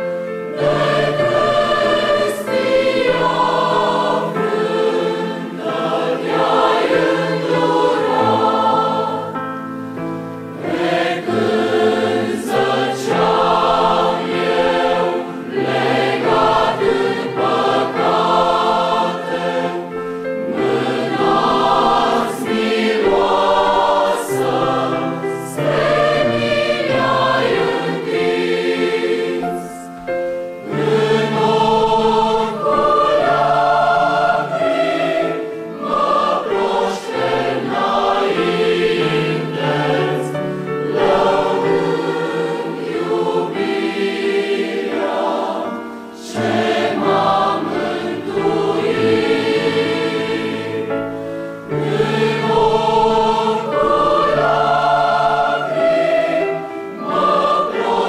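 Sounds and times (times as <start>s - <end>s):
mixed choir singing a hymn: 0.0s - 58.0s.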